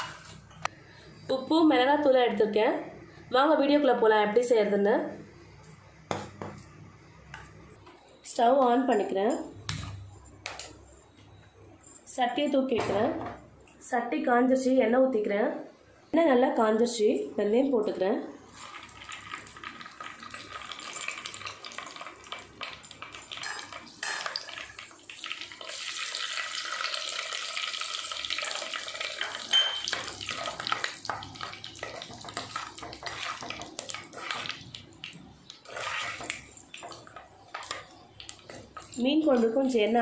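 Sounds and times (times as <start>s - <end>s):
food sizzling in hot oil: 18.4s - 39.8s.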